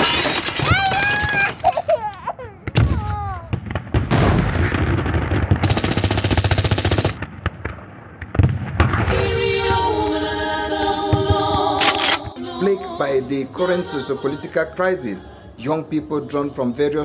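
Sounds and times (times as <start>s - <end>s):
automatic gunfire burst: 5.6s - 7.2s
voices wailing: 11.3s - 17.0s.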